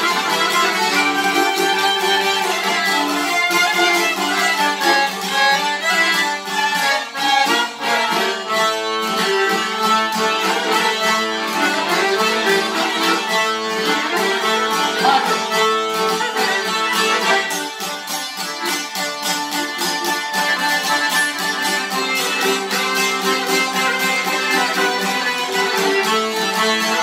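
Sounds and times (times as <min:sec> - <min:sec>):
fiddle melody: 0:00.0 - 0:27.0
piano accordion: 0:00.0 - 0:27.0
plucked long-necked lutes: 0:00.0 - 0:27.0.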